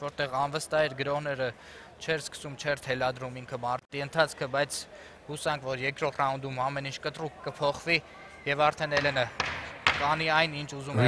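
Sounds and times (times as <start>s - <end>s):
sharp knock: 9.0s - 10.2s
man speaking: 10.0s - 11.0s.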